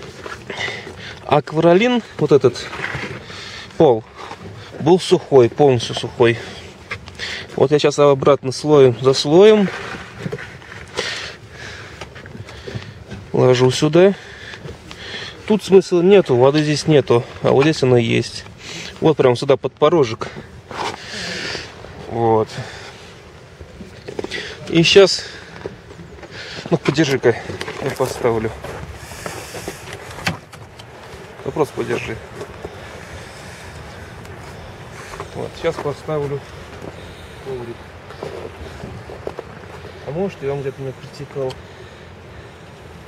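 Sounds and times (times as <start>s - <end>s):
rustling handling noise: 20.0s - 41.5s
short hissing rush: 29.0s - 30.2s.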